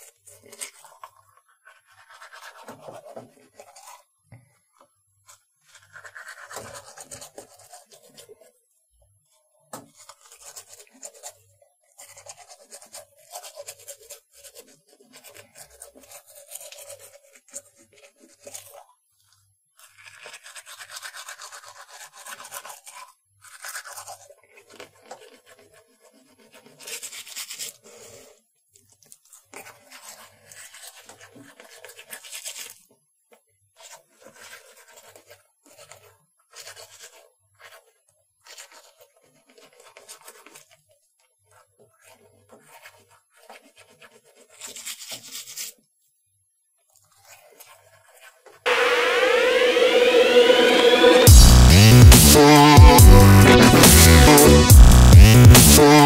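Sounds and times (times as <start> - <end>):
toothbrush scrubbing teeth: 0.0 - 8.6, 9.2 - 33.0, 33.7 - 45.9, 46.9 - 48.6.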